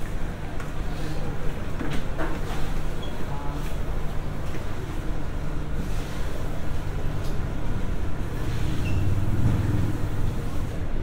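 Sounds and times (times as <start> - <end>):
escalator hum and rumble: 0.0 - 11.0.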